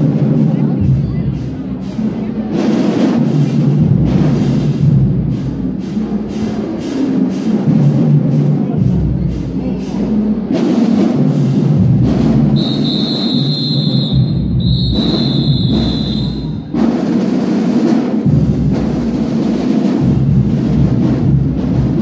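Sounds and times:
drum-heavy music: 0.0 - 22.0.

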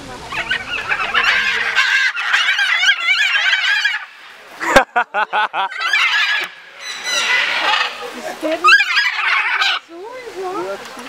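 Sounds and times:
macaws squawking: 0.2 - 4.4, 5.2 - 11.0.

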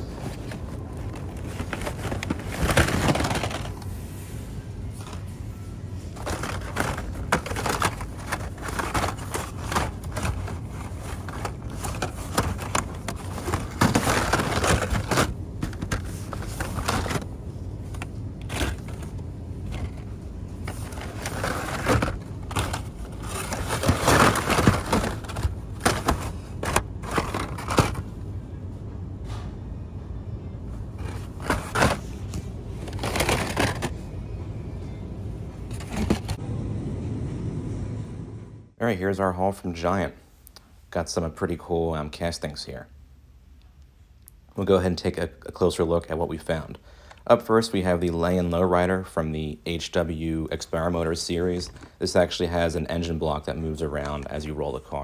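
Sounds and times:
plastic packs clattering: 0.0 - 3.9, 6.0 - 28.2, 31.0 - 34.0, 35.7 - 36.4
steady low hum: 0.0 - 44.6.

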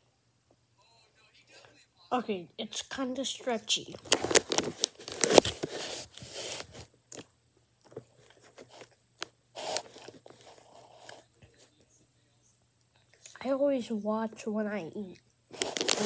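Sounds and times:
wrapper rustling: 4.0 - 6.9, 15.5 - 16.0.

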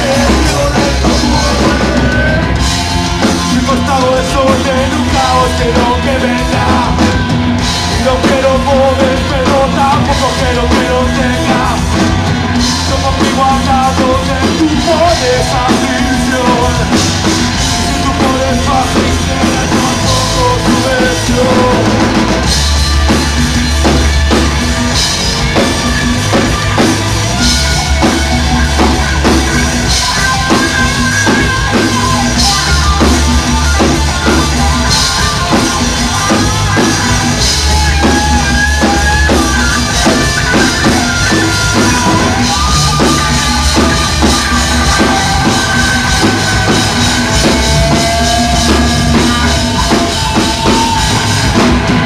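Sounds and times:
bass line: 0.0 - 52.0
drums: 0.0 - 52.0
punk rock band playing live: 0.0 - 52.0.

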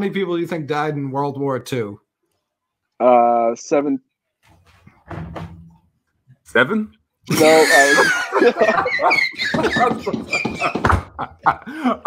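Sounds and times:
men laughing loudly: 7.3 - 12.0.

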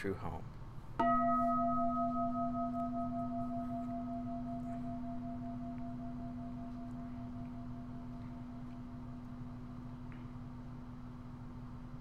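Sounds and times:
meditation bell ringing: 1.0 - 11.7.

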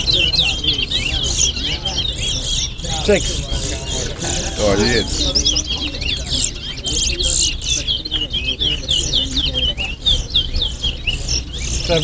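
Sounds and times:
finch singing fast chirps: 0.0 - 12.0
man calling out: 4.6 - 5.2.

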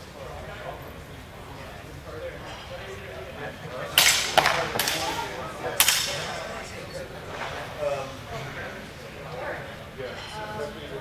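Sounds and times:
people talking indistinctly: 0.2 - 11.0.

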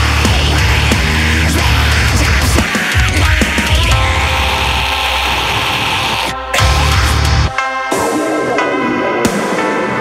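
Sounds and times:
harsh vocal scream: 0.0 - 7.5
distorted heavy guitar chord: 0.1 - 8.1.

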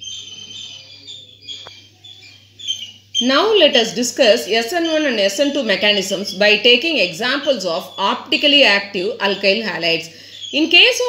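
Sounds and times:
faint bird chirping: 0.0 - 11.0.

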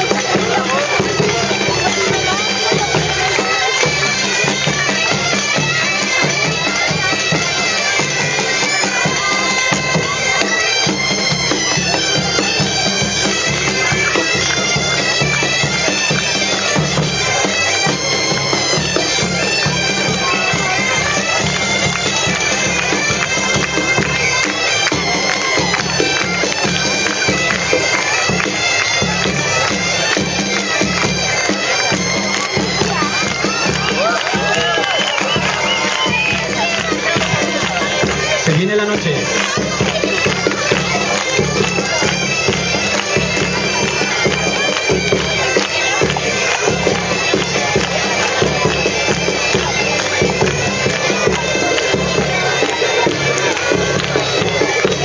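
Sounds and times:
bagpipes playing with drone: 0.0 - 55.0.

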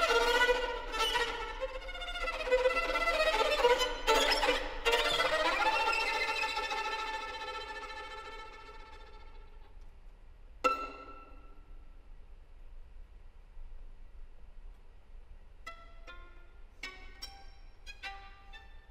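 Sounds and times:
solo violin playing: 0.0 - 9.6, 10.7 - 11.5, 15.6 - 18.9.

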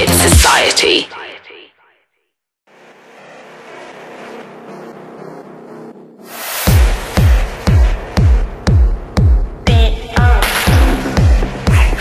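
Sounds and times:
noisy electronic drone: 2.7 - 8.6, 10.4 - 12.0.

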